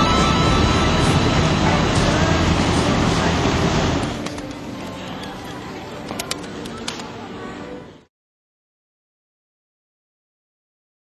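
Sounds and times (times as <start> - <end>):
low hum: 0.0 - 4.3.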